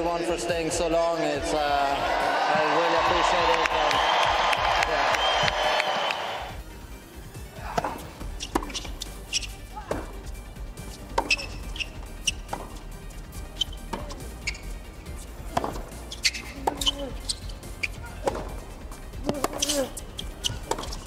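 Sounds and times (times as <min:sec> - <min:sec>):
background music: 0:00.0 - 0:21.0
racquet striking tennis ball: 0:07.8 - 0:10.2, 0:10.9 - 0:12.8, 0:13.6 - 0:14.7, 0:15.4 - 0:18.6, 0:19.2 - 0:21.0
tennis ball bouncing: 0:07.8 - 0:13.0, 0:13.6 - 0:21.0.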